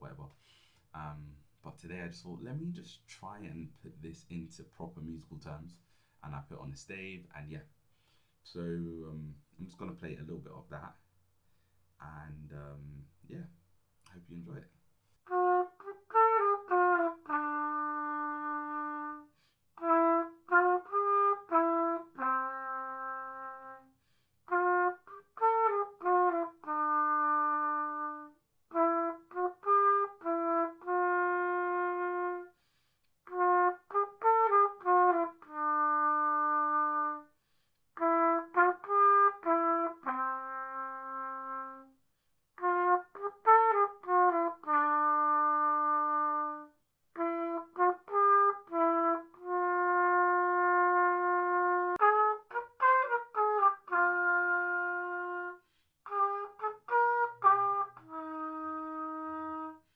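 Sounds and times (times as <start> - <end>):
solo trumpet melody: 15.2 - 42.0, 42.6 - 59.9.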